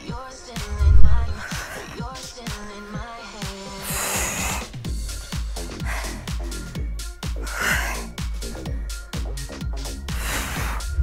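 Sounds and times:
upbeat electronic music: 0.0 - 11.0
woman breathing out hard: 10.1 - 11.0.

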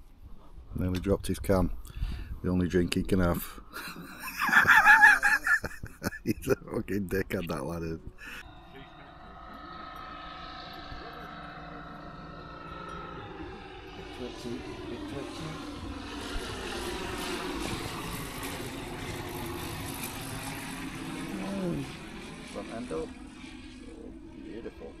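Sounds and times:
propeller aircraft engine droning: 0.0 - 25.0.

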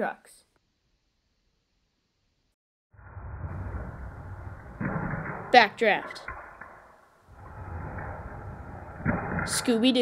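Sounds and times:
toy truck rolling on plastic track: 9.2 - 10.0.

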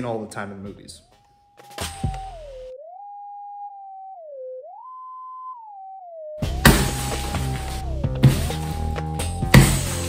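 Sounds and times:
theremin-like tone melody: 2.1 - 8.0.

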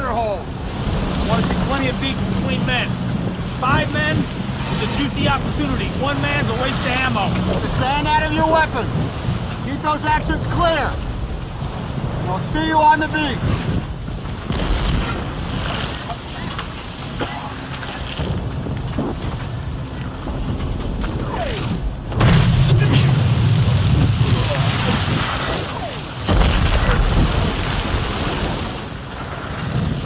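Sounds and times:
boat engine and hull noise: 0.0 - 30.0
rushing water and spray: 0.0 - 30.0
wind: 0.0 - 30.0.

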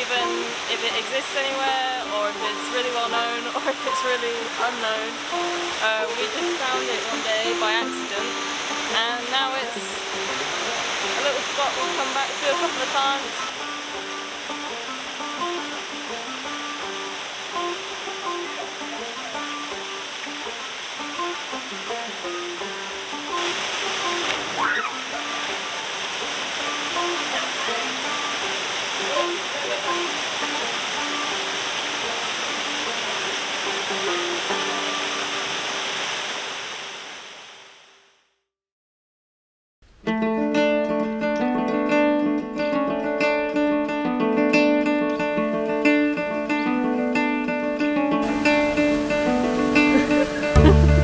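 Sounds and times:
light background melody: 0.0 - 25.6, 40.4 - 51.0
waterfall pouring into pool: 0.1 - 38.0, 48.2 - 51.0.

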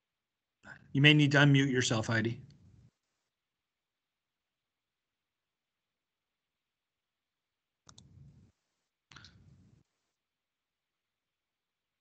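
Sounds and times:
faint clicks: 7.9 - 8.1.

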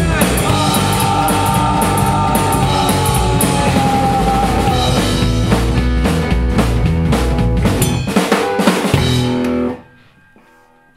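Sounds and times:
drum hits: 0.0 - 9.7
rockabilly band playing: 0.0 - 9.9.

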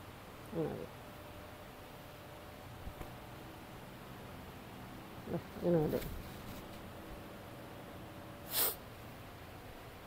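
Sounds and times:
high hissing swish: 8.5 - 8.8.

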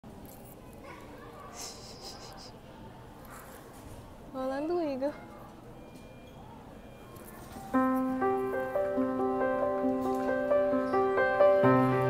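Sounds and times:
quiet voice close to microphone: 0.5 - 4.1.

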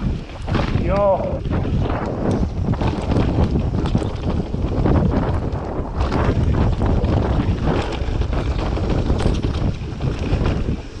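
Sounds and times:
bike rattling over bumps: 0.0 - 11.0
bike tyres rolling on dirt: 0.0 - 11.0
wind buffeting microphone: 0.0 - 11.0.

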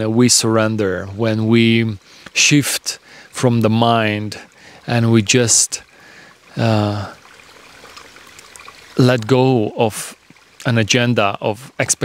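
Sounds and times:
water trickling over stones: 0.0 - 12.0.

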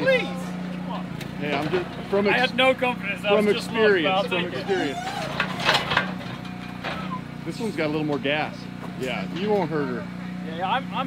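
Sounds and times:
metal headgate clanking and rattling: 4.6 - 7.2.

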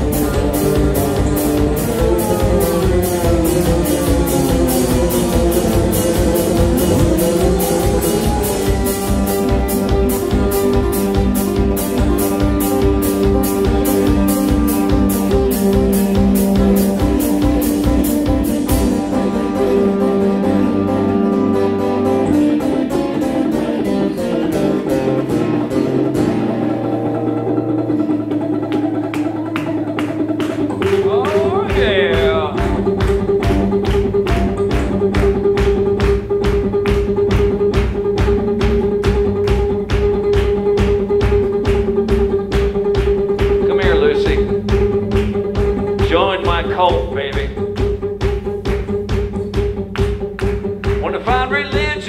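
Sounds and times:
steady drum beat: 0.0 - 21.2, 27.9 - 52.0
acoustic guitar strumming: 0.0 - 52.0.

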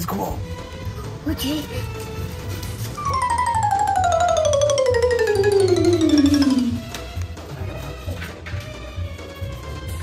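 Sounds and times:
comic falling sound effect: 3.0 - 7.0.

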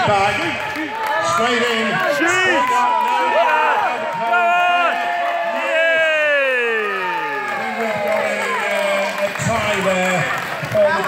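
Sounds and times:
spectators shouting and cheering: 0.0 - 11.0.

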